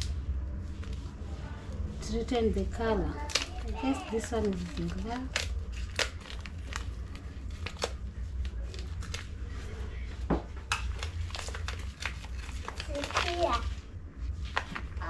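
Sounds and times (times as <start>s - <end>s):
steady low hum: 0.0s - 15.0s
plastic packet crinkling: 3.1s - 9.4s, 10.6s - 13.7s.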